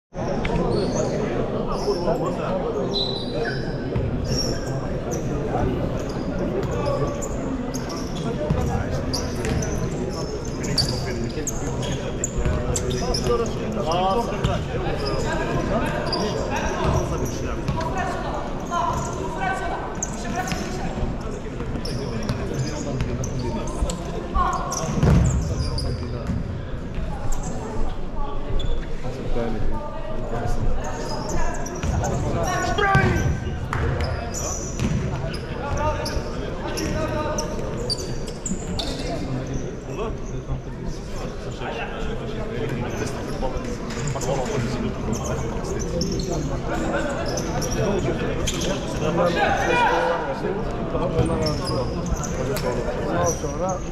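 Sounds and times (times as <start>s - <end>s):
voices shouting and talking: 0.2s - 53.9s.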